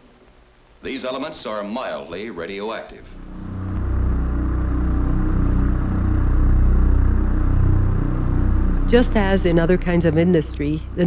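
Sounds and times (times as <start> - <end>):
low engine-like drone: 3.0 - 11.0.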